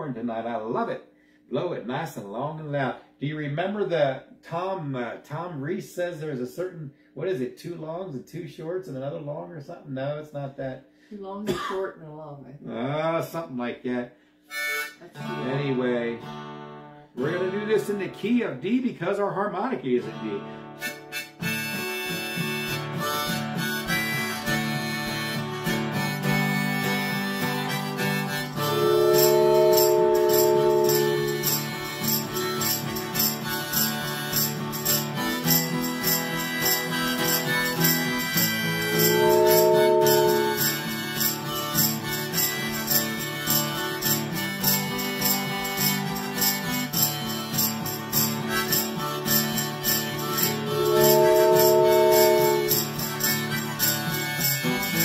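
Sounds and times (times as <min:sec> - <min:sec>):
harmonica melody: 0:14.4 - 0:18.4, 0:20.0 - 0:55.0
wooden train whistle blasts: 0:14.5 - 0:15.0, 0:20.8 - 0:32.9, 0:36.4 - 0:41.6, 0:49.9 - 0:55.0
acoustic guitar strumming: 0:14.5 - 0:18.6, 0:20.0 - 0:55.0.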